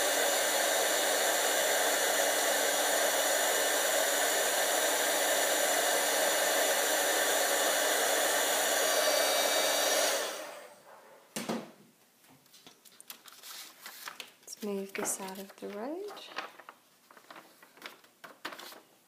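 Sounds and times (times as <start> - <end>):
fan whine: 0.0 - 10.8
heat tool blowing air: 0.0 - 10.8.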